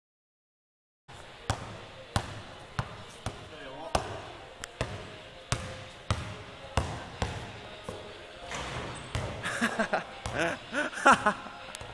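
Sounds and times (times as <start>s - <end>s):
basketball bouncing: 1.5s - 9.4s.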